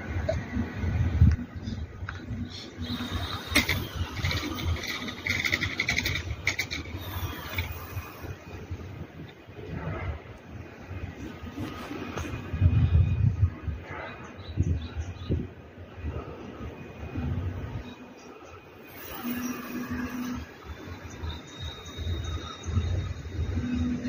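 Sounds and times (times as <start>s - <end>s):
faint outdoor ambience: 0.0s - 24.0s
wind rumbling on microphone: 0.0s - 24.0s.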